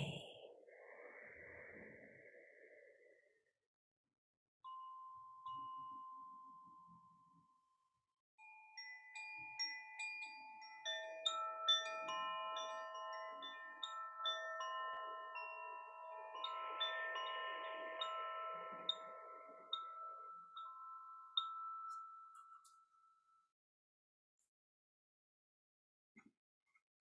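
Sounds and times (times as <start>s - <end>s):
wooden wind chime tinkling: 0.0s - 0.2s, 4.7s - 7.4s, 8.4s - 23.4s.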